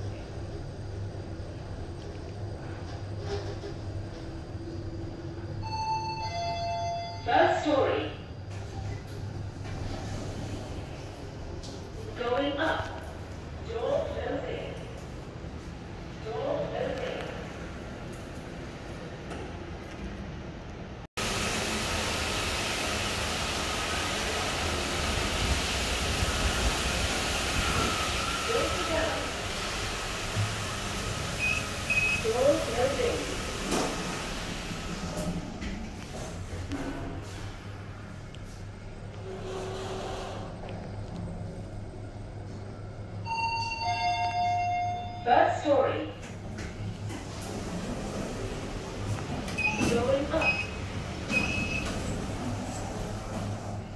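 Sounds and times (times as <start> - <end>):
recorded voice announcement: 7.2 - 8.2, 12.1 - 14.8, 16.2 - 17.4, 32.2 - 33.3, 45.2 - 46.2, 49.7 - 50.6
lift doors opening: 8.4 - 12.0, 46.2 - 53.9
lift doors sliding open: 8.4 - 12.0, 22.8 - 38.0, 39.1 - 41.0, 46.3 - 53.9.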